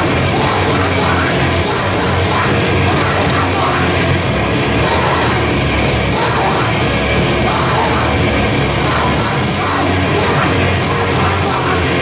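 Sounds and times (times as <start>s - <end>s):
metal band playing live: 0.0s - 12.0s.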